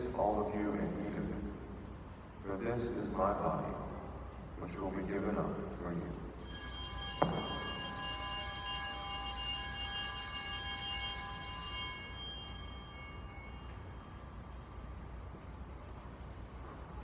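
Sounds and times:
altar bells ringing: 6.1s - 16.3s.

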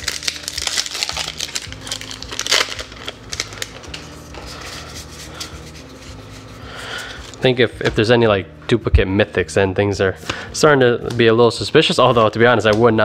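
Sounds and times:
foil wrapper crinkling: 0.0s - 5.5s
cards being handled: 0.0s - 7.4s.

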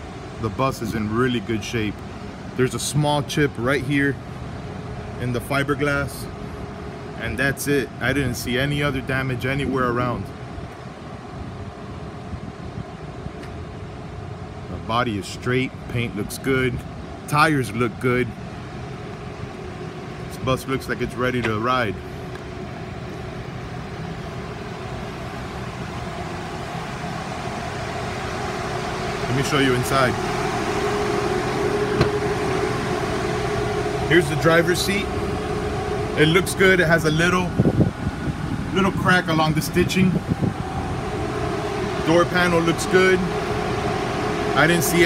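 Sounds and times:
air-conditioning running: 0.0s - 45.0s
diesel engine idling: 0.0s - 45.0s.

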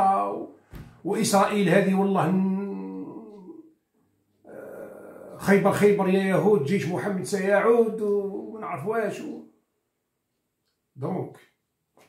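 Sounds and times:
man speaking: 0.0s - 3.7s, 4.5s - 9.6s, 11.0s - 11.5s.

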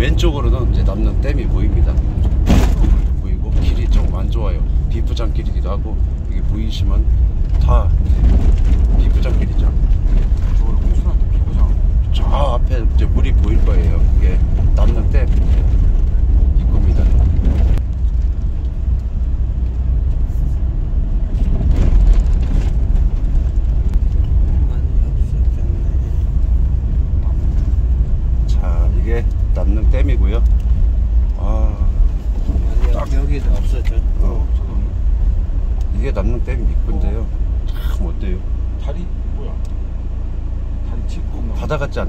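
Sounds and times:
vehicle rumbling on dirt road: 0.0s - 42.0s.

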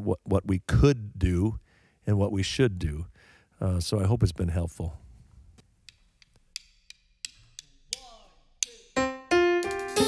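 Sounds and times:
keyboard chord: 9.0s - 10.0s.

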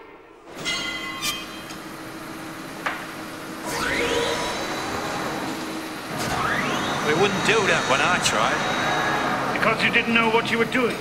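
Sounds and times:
factory machinery humming: 0.0s - 11.0s
motor spinning up with whine: 2.8s - 11.0s.

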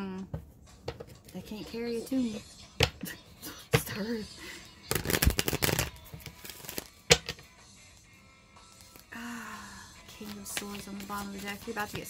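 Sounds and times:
cards being shuffled: 4.9s - 7.5s, 8.6s - 9.1s, 10.1s - 12.0s
cards snapping: 4.9s - 7.5s.

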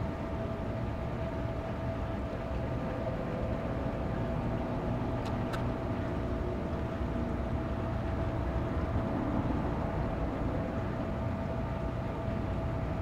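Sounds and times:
faint constant hum: 0.0s - 13.0s
steady low rumble: 0.0s - 13.0s.

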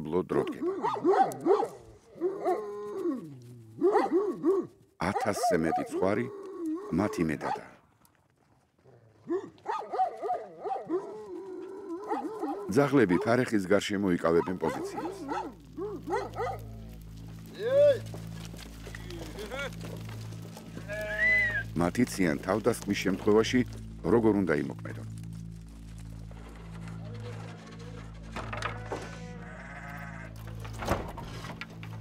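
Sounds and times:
dogs barking: 0.4s - 7.8s, 9.2s - 17.4s.

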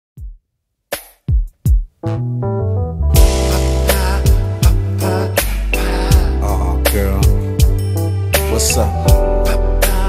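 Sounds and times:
kick drum thumps: 0.2s - 0.4s, 1.0s - 2.0s
held chords: 2.0s - 10.0s.

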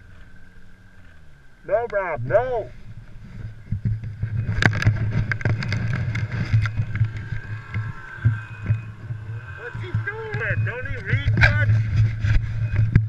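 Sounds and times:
snowmobile engine running: 0.0s - 13.0s
knocks and rattles over bumps: 2.8s - 9.2s.

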